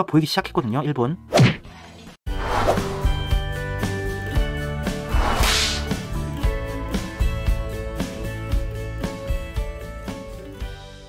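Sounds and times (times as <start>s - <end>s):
whoosh sound effect: 5.0s - 6.0s.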